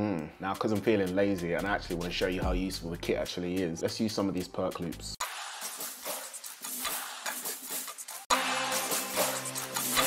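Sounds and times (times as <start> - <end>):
hat and shaker percussion loop: 0.5 - 10.0.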